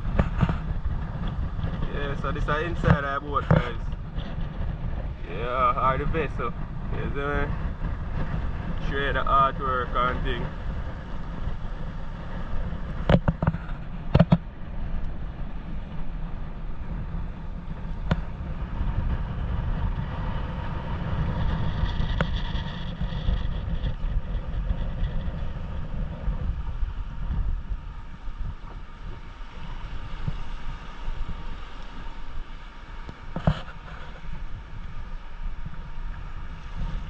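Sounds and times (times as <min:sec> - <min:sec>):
water washing around boat: 0:00.0 - 0:37.0
wind buffeting microphone: 0:00.0 - 0:37.0.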